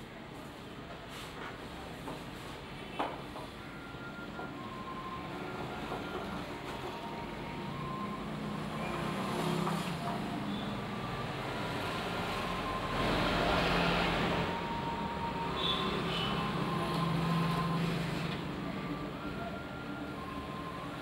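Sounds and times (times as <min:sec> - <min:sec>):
road traffic noise: 0:00.2 - 0:21.0
vehicle approaching: 0:04.7 - 0:19.3.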